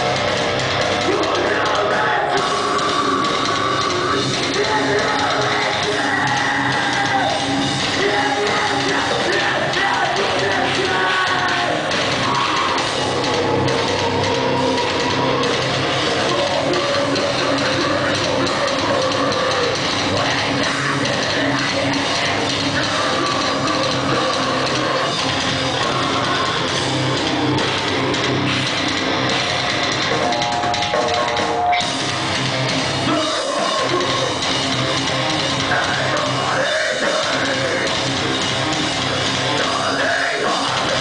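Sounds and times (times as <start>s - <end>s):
distorted electric guitars: 0.0s - 41.0s
drum kit: 0.0s - 41.0s
live metal band playing: 0.0s - 41.0s.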